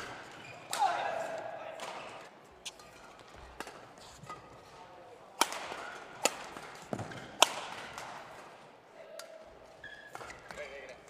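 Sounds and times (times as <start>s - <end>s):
badminton racket hitting shuttlecock: 5.4s - 8.2s.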